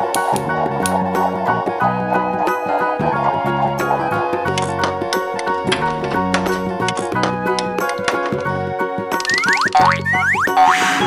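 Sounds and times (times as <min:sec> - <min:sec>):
light children's music: 0:00.0 - 0:11.0
springy cartoon sound effects: 0:09.2 - 0:11.0.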